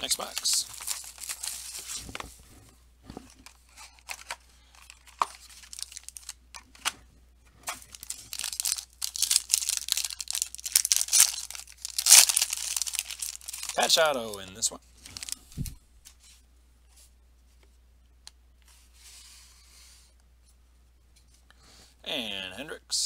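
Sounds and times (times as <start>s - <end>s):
plastic wrapper crinkling and tearing: 0.0s - 2.1s, 3.4s - 6.9s, 7.7s - 15.4s.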